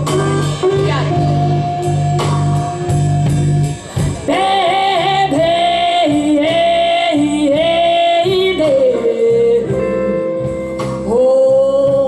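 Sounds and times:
live blues band: 0.0 - 12.0.

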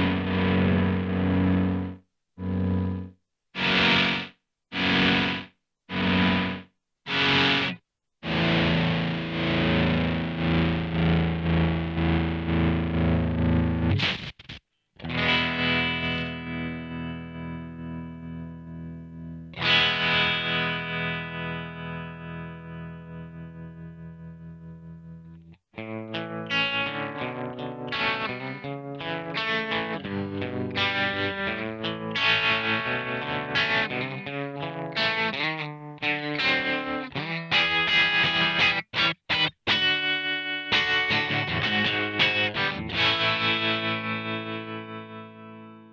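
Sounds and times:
electric guitar with tremolo: 0.0 - 45.9.

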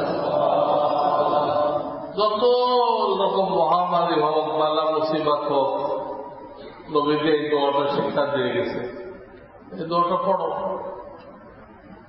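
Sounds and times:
men chanting together: 0.0 - 2.2.

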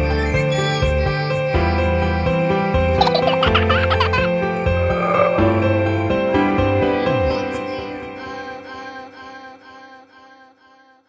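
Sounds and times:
gentle instrumental children's music: 0.0 - 11.0
baby giggling: 3.0 - 4.3.

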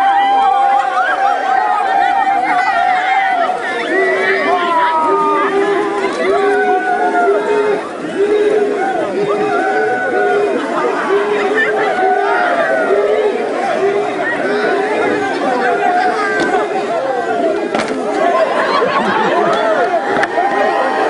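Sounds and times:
crowd chatter: 0.0 - 21.0
people shouting: 0.0 - 21.0.

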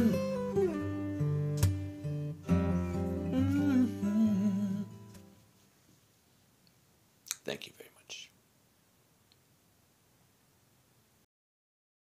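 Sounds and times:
man humming: 0.0 - 0.6, 2.9 - 5.0
acoustic guitar chord ringing: 0.0 - 5.4.

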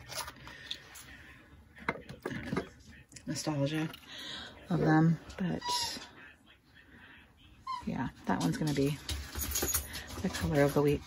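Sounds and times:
woman speaking: 3.2 - 4.0, 4.6 - 6.1, 7.7 - 9.1, 10.1 - 11.0.

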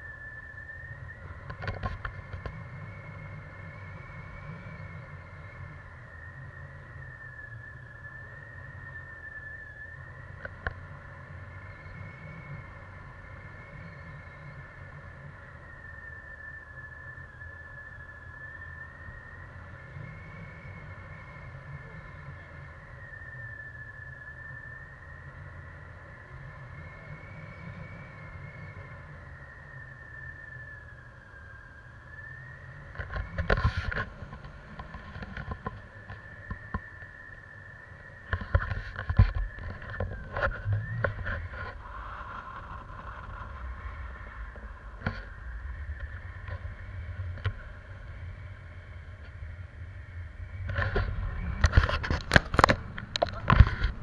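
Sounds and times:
wavering whistling tone: 0.0 - 54.0
wind rushing over microphone: 0.0 - 54.0.

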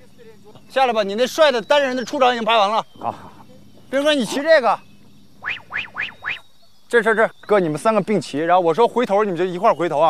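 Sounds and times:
rising whistle-like chirps: 4.0 - 8.0.

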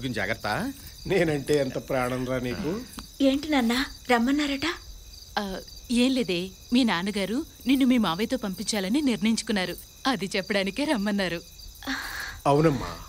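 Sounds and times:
people talking: 0.0 - 4.8, 5.4 - 13.0
crickets chirring: 0.0 - 13.0.

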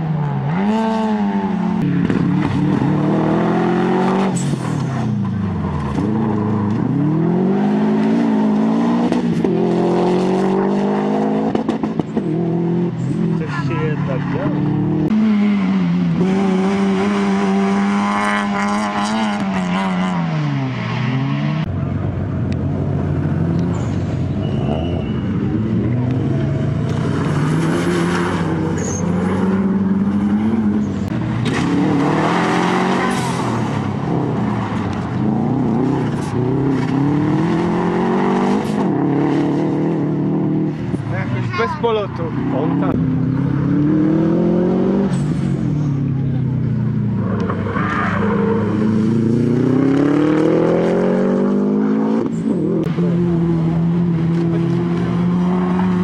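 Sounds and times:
rally car engines accelerating: 0.0 - 56.0.

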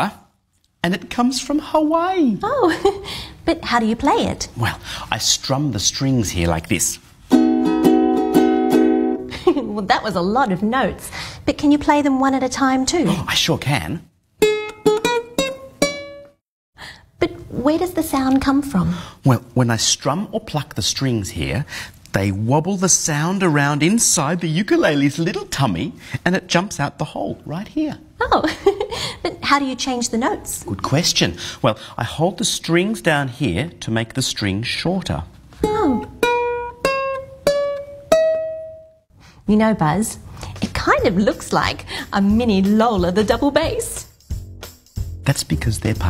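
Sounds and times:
ukulele notes plucked: 7.3 - 9.3, 14.4 - 16.4, 35.6 - 38.9.

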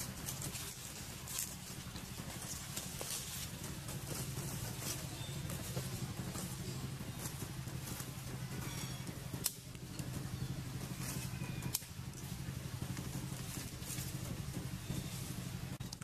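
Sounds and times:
low hum: 0.0 - 16.0
twigs and leaves crackling: 0.0 - 16.0.

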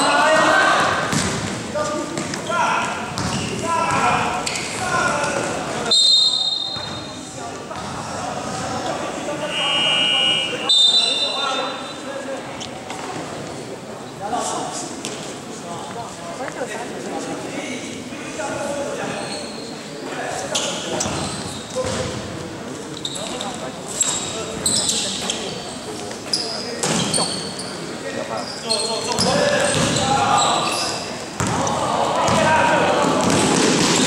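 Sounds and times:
sneakers squeaking: 0.0 - 12.1, 19.0 - 34.0
voices in a hall: 0.0 - 34.0
basketball bouncing on gym floor: 1.1 - 1.6, 3.1 - 4.2, 29.2 - 30.0, 31.4 - 32.5, 33.1 - 34.0
shrill signal tones: 9.4 - 12.0.

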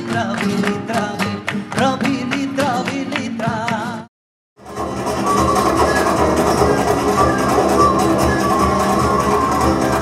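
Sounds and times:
flamenco guitar ensemble music: 0.0 - 10.0.

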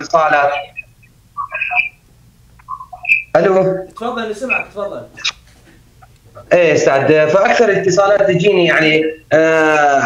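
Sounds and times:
voice over telephone speaker: 0.0 - 2.0, 2.6 - 5.3.

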